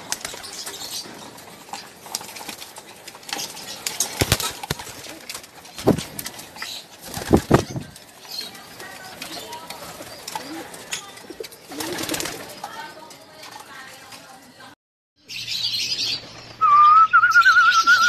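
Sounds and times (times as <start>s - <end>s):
pigeons cooing: 0.0s - 12.8s.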